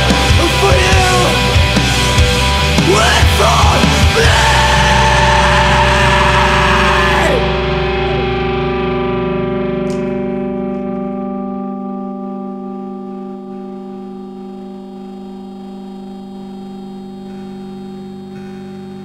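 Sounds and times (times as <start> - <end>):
loud distorted band music: 0.0 - 11.8
distorted electric guitar chord ringing: 0.0 - 19.0.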